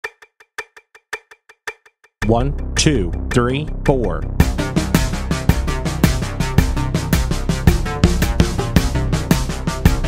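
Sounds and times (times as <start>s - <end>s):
metronome clicking: 0.0s - 2.4s.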